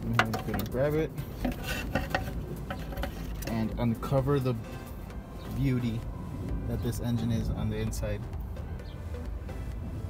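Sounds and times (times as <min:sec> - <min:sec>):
metallic clinks and knocks: 0:00.0 - 0:03.6.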